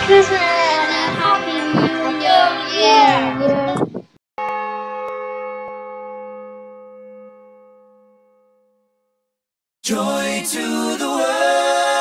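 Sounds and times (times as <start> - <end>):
bell-like chime: 4.4 - 9.3.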